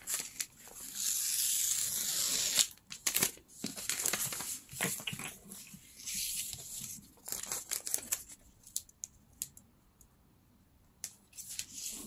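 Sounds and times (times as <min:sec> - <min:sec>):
paper crinkling and rustling: 0:02.9 - 0:08.9.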